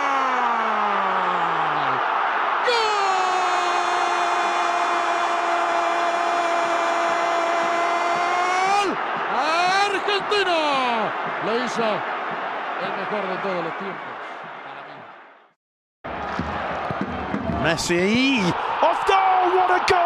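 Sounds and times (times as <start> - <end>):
stadium crowd noise: 0.0 - 20.0.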